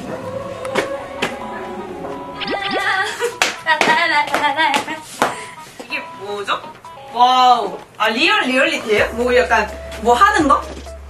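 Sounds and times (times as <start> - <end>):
woman's sing-song voice: 0.0 - 5.5.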